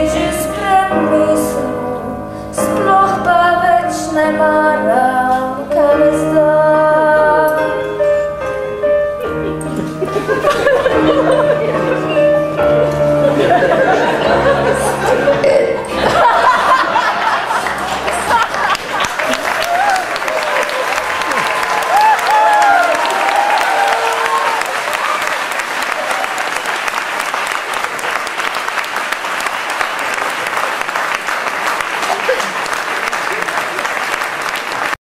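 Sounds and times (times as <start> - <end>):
audience applauding: 13.2 - 35.0.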